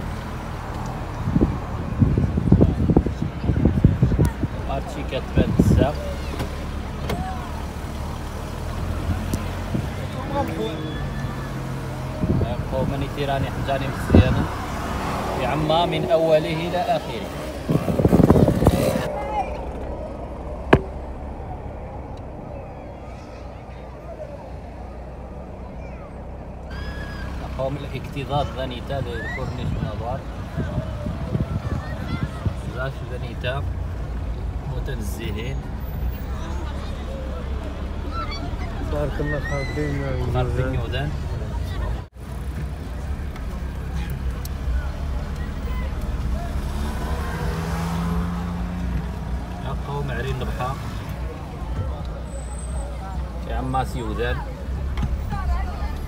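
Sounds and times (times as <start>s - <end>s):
car engine and road rumble: 0.0s - 56.0s
faint voices: 0.0s - 56.0s.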